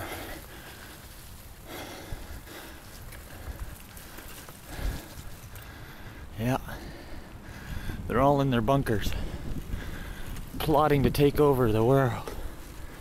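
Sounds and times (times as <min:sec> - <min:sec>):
soft breathing: 0:00.0 - 0:08.1, 0:09.1 - 0:10.6.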